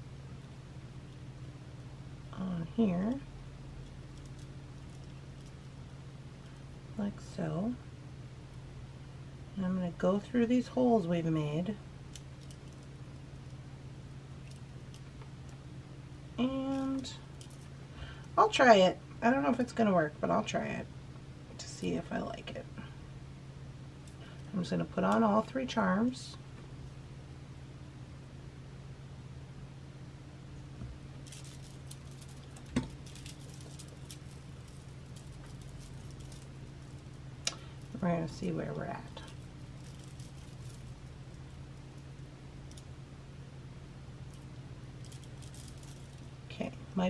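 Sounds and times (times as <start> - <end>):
low hum: 0.0 - 47.0
beads knocking together: 30.8 - 43.0, 44.2 - 46.4
small metal jewellery parts clinking: 31.2 - 42.9, 44.3 - 46.4.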